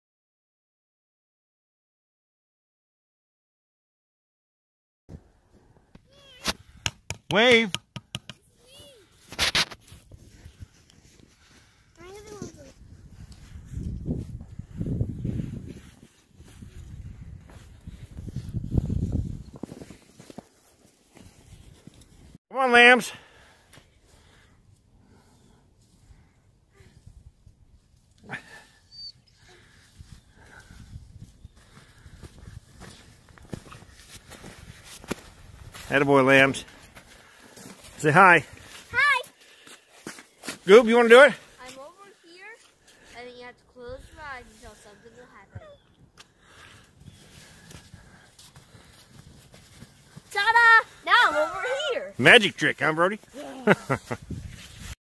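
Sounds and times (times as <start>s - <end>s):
snow crunching and rustling: 8.6s - 22.4s, 30.4s - 45.5s, 47.1s - 55.0s.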